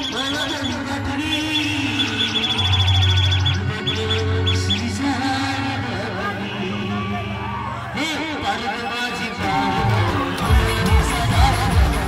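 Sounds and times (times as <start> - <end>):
high chirping notes: 0.0 - 5.5
band playing with bass and drums: 9.2 - 12.0.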